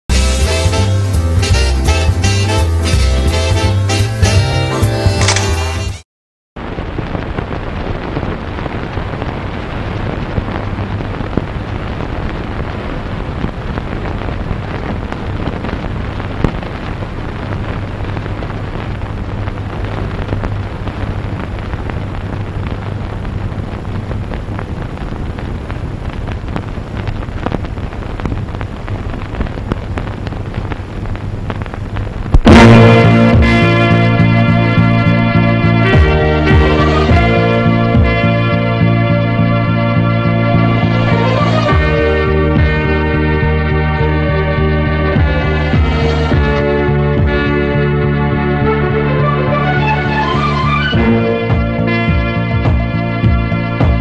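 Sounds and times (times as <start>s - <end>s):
film soundtrack hiss: 0.1s - 5.9s, 6.6s - 54.0s
scattered crackles: 3.4s - 6.0s, 6.6s - 54.0s.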